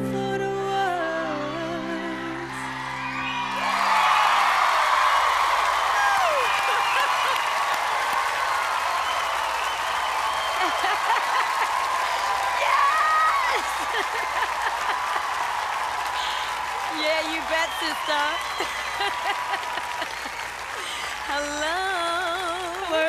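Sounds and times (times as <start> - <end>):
audience cheering and applauding: 1.9 - 23.0
shouts and whoops: 2.4 - 22.7.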